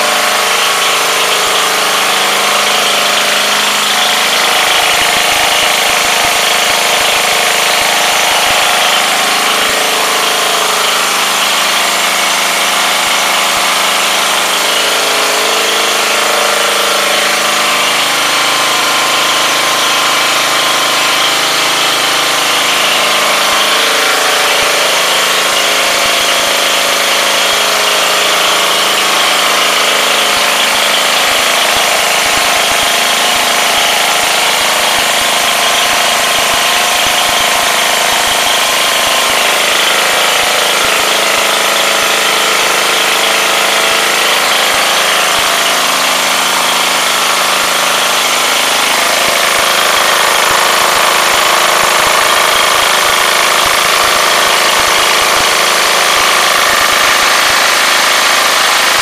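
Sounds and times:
engine driving generator: 0.0 - 59.0.

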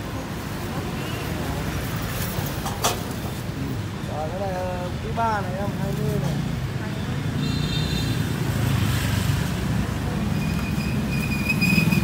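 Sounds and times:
motorbikes and cars passing: 0.0 - 12.0.

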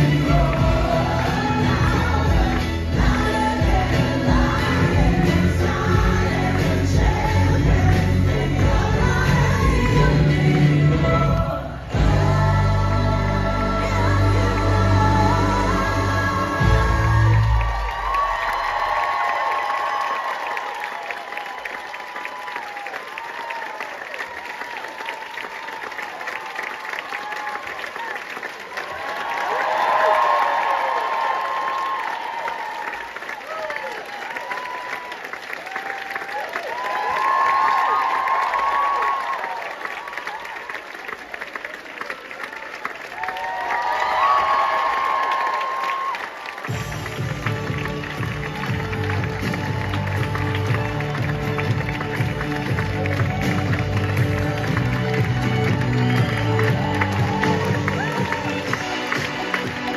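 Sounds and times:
audience applauding: 0.0 - 12.0, 13.3 - 59.9
band music with heavy bass beat: 0.0 - 17.3, 46.7 - 59.9
audience cheering: 16.5 - 59.9.

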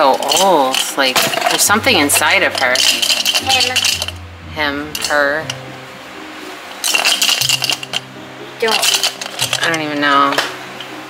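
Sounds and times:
loose pieces rattling in doll: 0.0 - 1.7, 8.6 - 10.5
faint background music: 0.0 - 11.0.

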